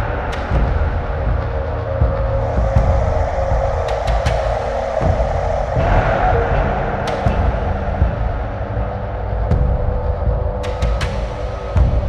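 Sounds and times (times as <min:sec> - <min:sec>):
dark ambient electronic music: 0:00.0 - 0:12.0.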